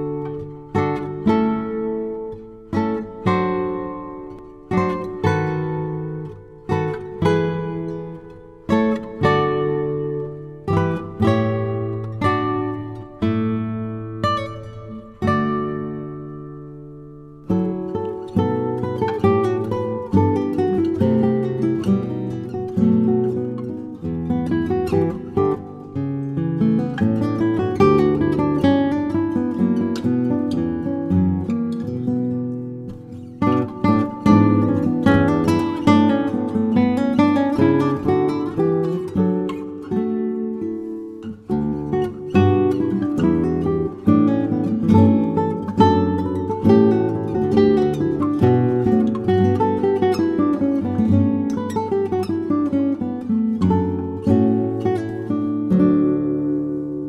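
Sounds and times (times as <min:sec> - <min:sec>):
acoustic guitar music: 0:00.0 - 0:57.0.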